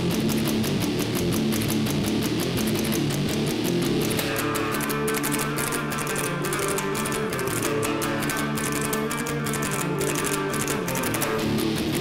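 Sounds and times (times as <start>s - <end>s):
electric lute strummed rapidly: 0.0s - 12.0s.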